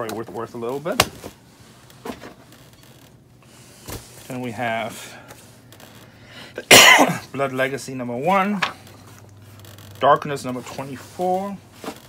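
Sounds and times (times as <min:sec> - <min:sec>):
man coughing: 0:06.6 - 0:07.3.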